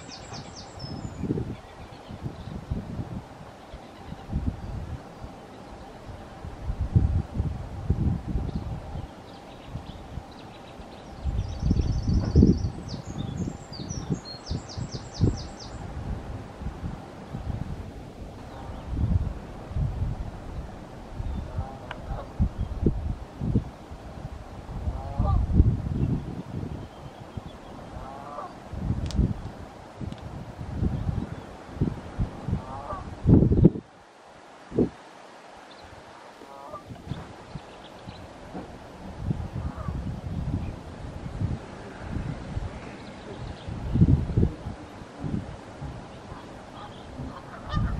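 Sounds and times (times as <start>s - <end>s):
distant bird calls: 0.0s - 2.8s, 3.4s - 6.4s, 8.4s - 15.9s, 24.4s - 28.7s, 35.6s - 38.7s, 41.8s - 44.0s, 46.1s - 47.9s
gusty wind on microphone: 0.0s - 47.9s.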